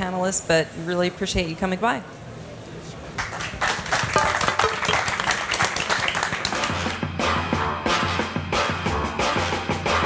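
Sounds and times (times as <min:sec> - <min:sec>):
audience applauding: 0:03.2 - 0:07.0
music: 0:04.2 - 0:10.0.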